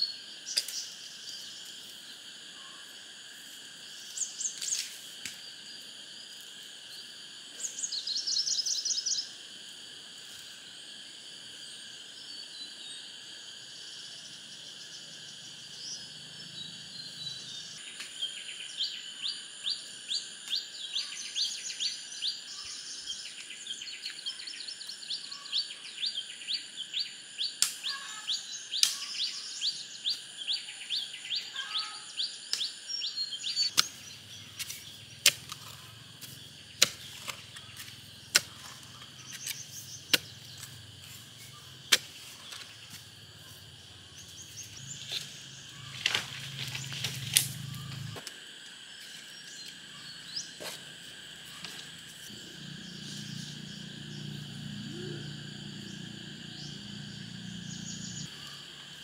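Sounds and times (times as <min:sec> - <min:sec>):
high-pitched insect drone: 0:00.0 - 0:59.0
hoe chopping soil: 0:33.7 - 0:41.2, 0:41.9 - 0:43.0.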